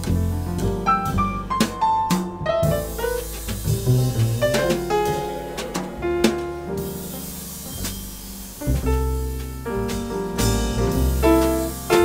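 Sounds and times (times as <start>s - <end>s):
upright piano: 0.0s - 12.0s
plucked double bass: 2.2s - 7.6s.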